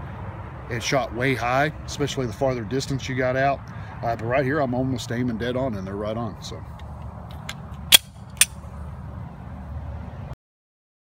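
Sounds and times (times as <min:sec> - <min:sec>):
sharp click: 0:07.3 - 0:08.6.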